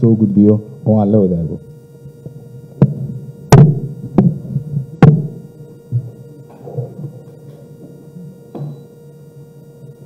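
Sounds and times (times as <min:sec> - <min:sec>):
faint steady hum: 0:00.0 - 0:10.0
microphone handling thumps: 0:02.2 - 0:07.2.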